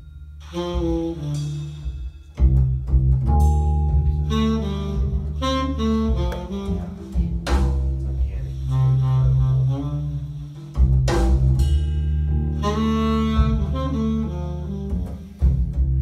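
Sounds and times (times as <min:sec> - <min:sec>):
jazz over loudspeakers: 0:00.4 - 0:11.6, 0:12.4 - 0:16.0.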